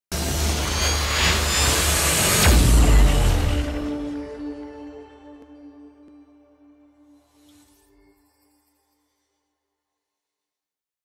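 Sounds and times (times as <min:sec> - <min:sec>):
low rumbling drone: 0:00.1 - 0:06.4.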